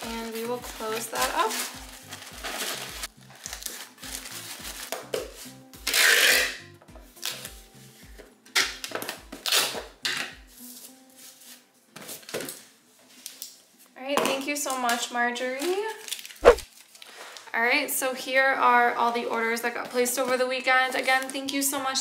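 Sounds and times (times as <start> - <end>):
packing tape ripping: 0.0 - 6.6, 7.2 - 7.5, 8.6 - 10.4, 16.0 - 17.4.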